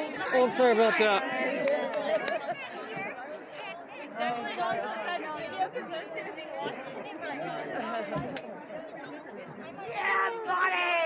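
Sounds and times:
overlapping chatter of spectators: 0.0 - 11.0.

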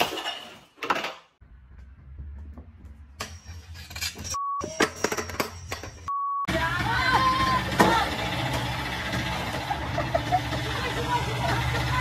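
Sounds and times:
excavator engine running: 6.5 - 12.0
people shouting: 6.6 - 8.2.

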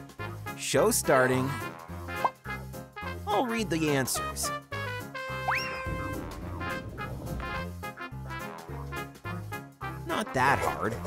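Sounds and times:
background music: 0.0 - 11.0
upward whistle-like glide: 5.5 - 7.4.

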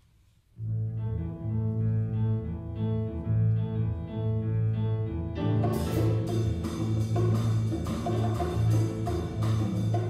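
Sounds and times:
jazz band playing mambo: 5.3 - 10.0
repeating bass line: 5.6 - 10.0.

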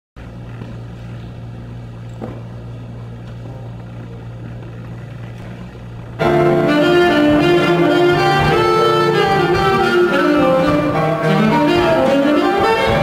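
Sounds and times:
low background hum: 0.2 - 13.0.

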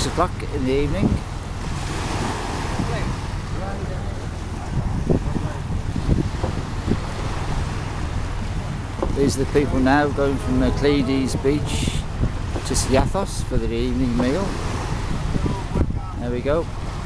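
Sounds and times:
boat engine idling: 0.0 - 17.0
water lapping: 0.0 - 17.0
wind buffeting microphone: 0.0 - 17.0.

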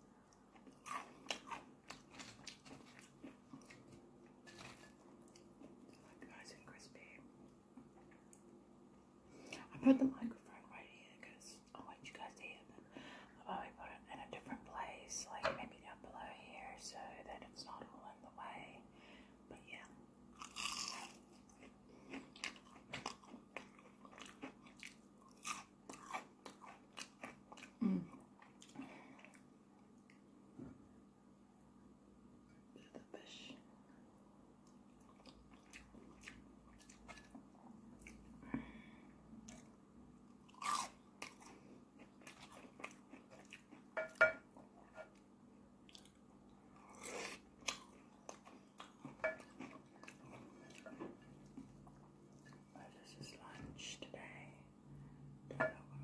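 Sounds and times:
chewing crispy food: 0.3 - 6.1, 20.4 - 29.5, 34.6 - 38.4, 40.3 - 44.3, 45.8 - 52.6.

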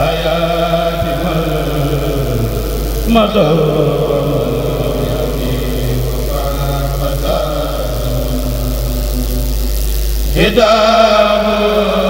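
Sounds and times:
steady low hum: 0.0 - 12.0
group chanting in unison: 3.1 - 8.7, 10.3 - 12.0.

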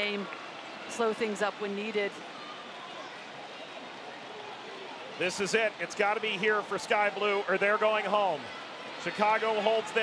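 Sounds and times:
stadium ambience: 0.0 - 10.0.

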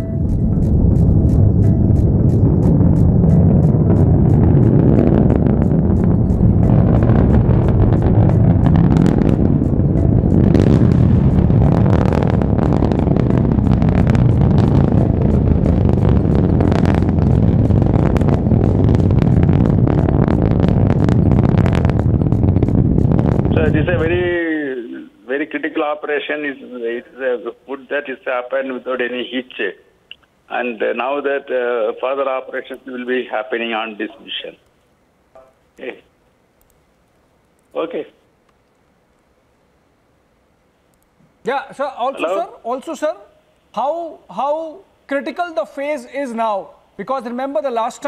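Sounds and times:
background music with beat: 0.0 - 11.7
rocket launch roar: 0.0 - 24.6.

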